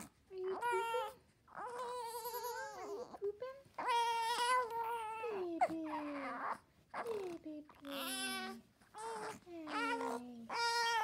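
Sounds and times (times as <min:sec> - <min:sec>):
newborn baby crying: 0:00.5 - 0:03.2, 0:03.8 - 0:11.0.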